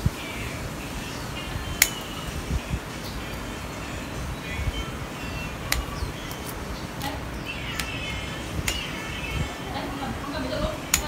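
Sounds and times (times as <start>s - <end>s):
scissors snipping twigs: 1.8s - 2.1s, 5.7s - 9.0s.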